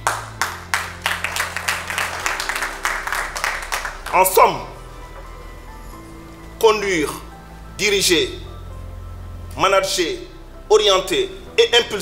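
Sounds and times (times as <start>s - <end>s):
audience applauding: 0.0s - 4.4s
soft background music: 0.0s - 12.0s.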